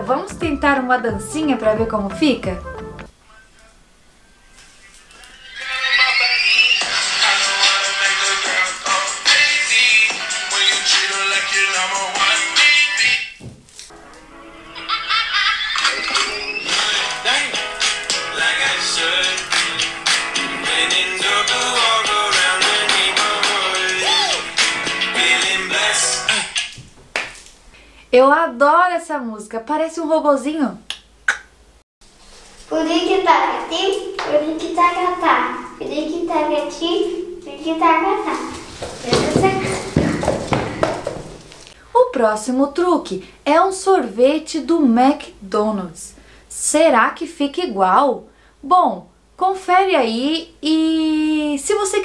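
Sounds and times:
upbeat pop dance music: 0.0 - 3.1, 5.6 - 13.4, 15.8 - 26.7
excited voices: 5.1 - 9.4, 14.9 - 19.8, 20.4 - 26.6
girls high-pitched vocalizing: 24.0 - 24.5.

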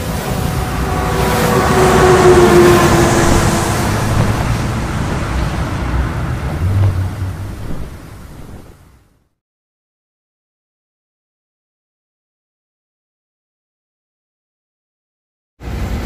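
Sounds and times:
held horn-like tone: 0.0 - 8.8
deep rushing whoosh: 0.0 - 9.0.

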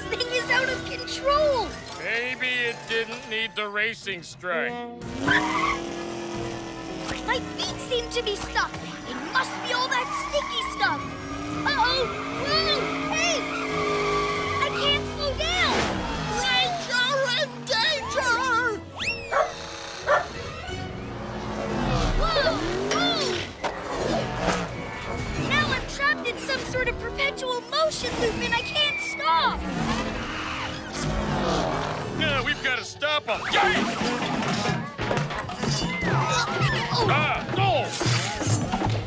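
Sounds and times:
background music: 0.0 - 39.0
cartoon skidding: 5.0 - 32.4
wordless yelps: 5.2 - 6.0, 9.0 - 20.8
squeaky chirps: 17.7 - 21.0, 27.8 - 31.2
falling whistle: 19.0 - 19.4.

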